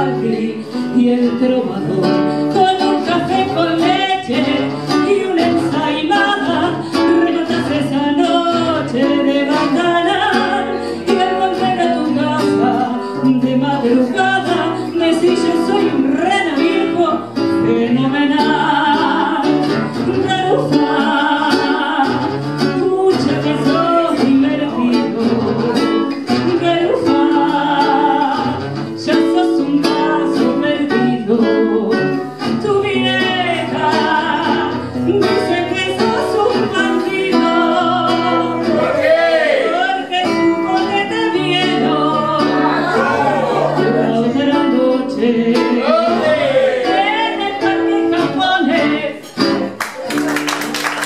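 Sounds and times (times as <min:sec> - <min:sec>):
woman singing into microphone: 0:00.0 - 0:38.9, 0:39.6 - 0:49.8
acoustic guitar accompaniment: 0:00.0 - 0:51.0.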